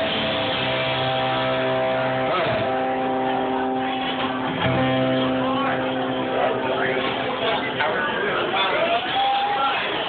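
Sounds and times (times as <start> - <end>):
guitar chords ringing: 0.0 - 8.4.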